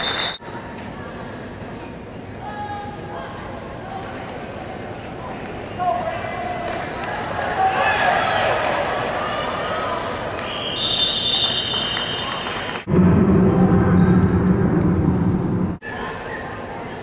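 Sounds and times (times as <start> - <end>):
referee's whistle: 0.0 - 0.4, 10.4 - 12.5
low hum and rumble: 12.9 - 15.8.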